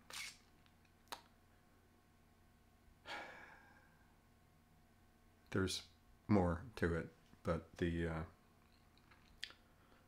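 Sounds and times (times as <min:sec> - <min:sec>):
man sighing: 0:03.0 - 0:04.0.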